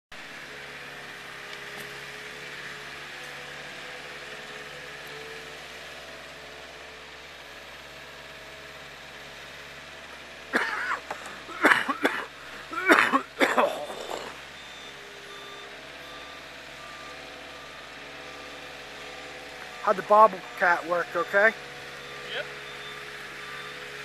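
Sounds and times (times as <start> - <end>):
forklift engine humming: 0.1 - 24.0.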